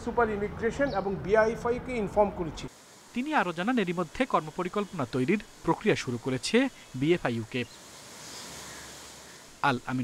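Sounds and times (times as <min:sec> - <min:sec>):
faint steady hiss: 0:00.0 - 0:10.0
person speaking: 0:00.4 - 0:07.7.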